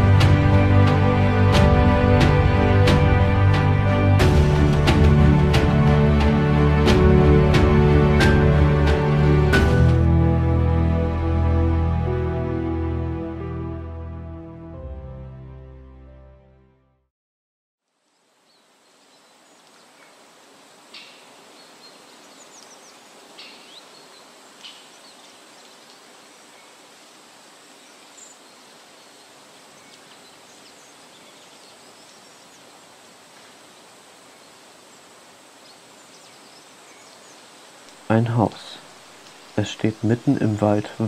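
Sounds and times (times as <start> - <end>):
soft outdoor background hiss: 17.8 - 41.0.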